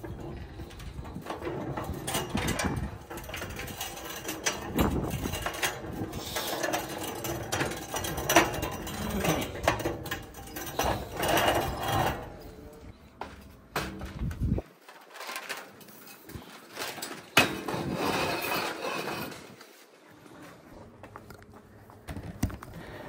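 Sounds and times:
metal frame knocking: 0.0s - 14.6s
sign scraping over paving stones: 17.6s - 19.9s.

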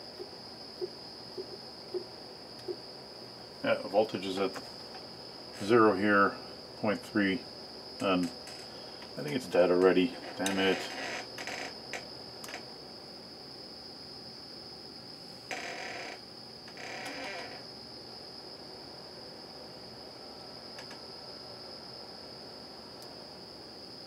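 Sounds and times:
steady high-pitched whine: 0.0s - 24.0s.

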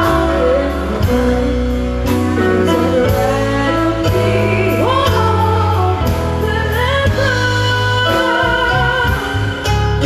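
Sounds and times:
bass line: 0.0s - 10.0s
drums: 0.0s - 10.0s
electric guitars: 0.0s - 10.0s
woman singing: 0.0s - 10.0s.

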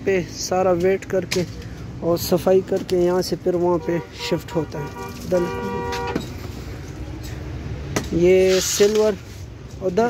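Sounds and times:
road traffic: 0.0s - 10.0s
vehicle horn: 3.7s - 6.4s.

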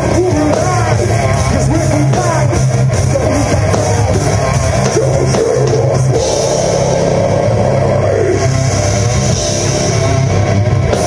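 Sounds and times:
bass guitar: 0.0s - 11.0s
drum kit: 0.0s - 11.0s
electric guitar: 0.0s - 11.0s.

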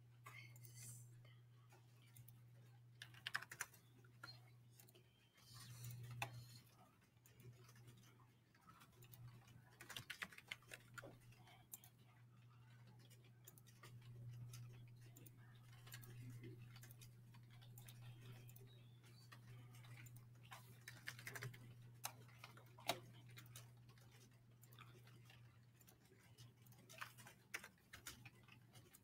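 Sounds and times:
steady low hum: 10.4s - 26.7s.

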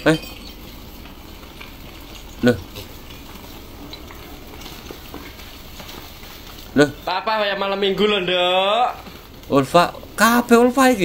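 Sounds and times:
hooves shuffling on dirt: 0.0s - 11.0s.

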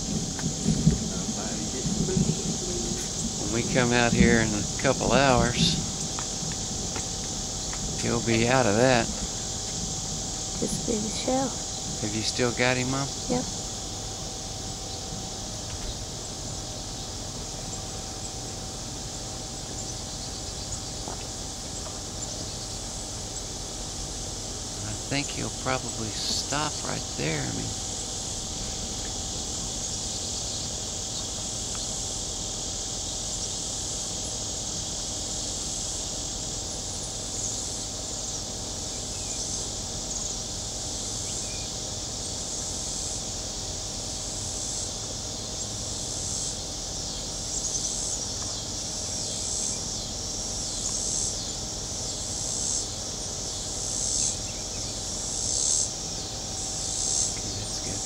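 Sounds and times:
high-pitched insect buzzing: 0.0s - 58.0s
pulsing insect call: 0.0s - 58.0s.

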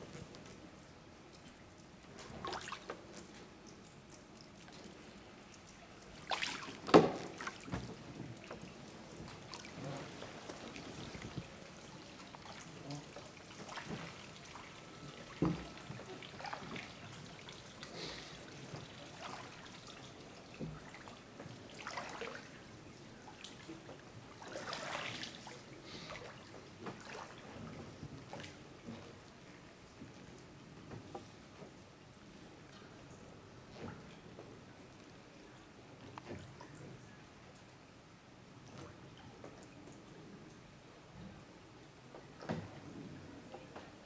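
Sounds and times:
oar splashing in water: 2.3s - 3.2s, 6.1s - 22.6s, 23.3s - 29.0s.

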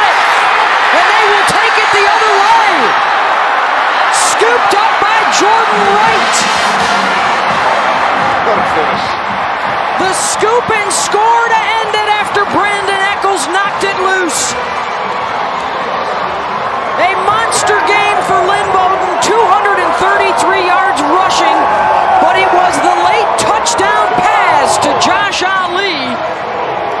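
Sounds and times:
crowd yelling and cheering: 0.0s - 27.0s.

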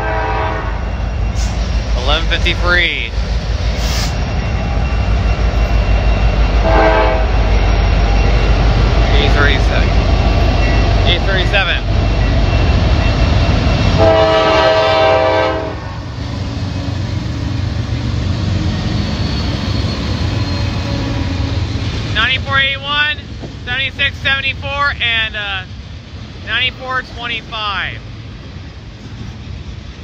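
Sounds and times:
train air horn: 0.0s - 1.6s, 6.6s - 7.5s, 13.9s - 16.1s
diesel locomotive rumble: 0.0s - 30.0s.

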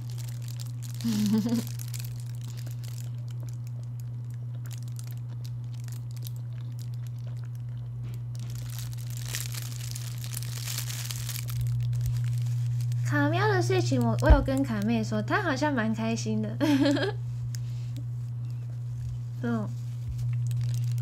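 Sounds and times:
bun being bitten and eaten: 0.0s - 13.0s, 19.9s - 21.0s
plastic bag crinkling: 0.0s - 15.1s, 20.1s - 21.0s
steady low hum: 0.0s - 21.0s.

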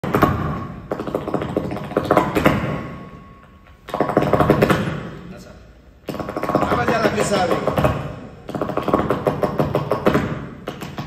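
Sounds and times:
dance shoes striking floor: 6.0s - 11.0s.

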